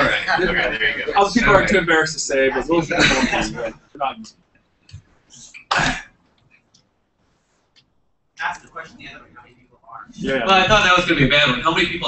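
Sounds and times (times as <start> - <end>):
person clearing throat: 5.6 - 6.2.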